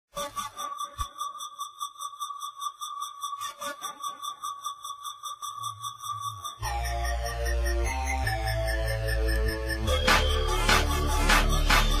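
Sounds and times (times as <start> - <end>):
high sonar-like tone: 0.2 - 10.6.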